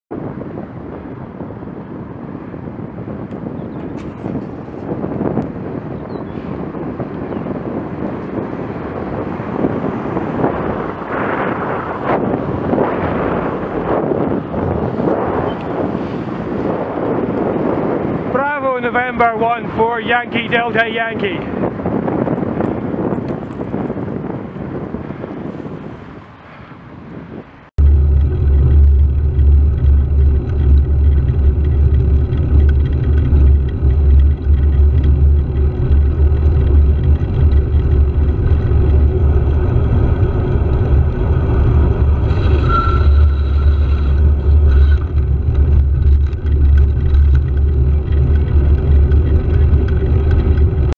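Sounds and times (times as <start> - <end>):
wind and road noise: 0.1 - 50.9
wind buffeting microphone: 0.1 - 50.9.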